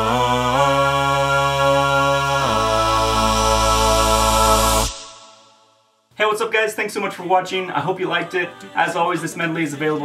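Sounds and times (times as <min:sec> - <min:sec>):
deep sung bass note: 0:00.0 - 0:05.3
a cappella voices holding chord: 0:00.0 - 0:05.8, 0:07.7 - 0:10.0.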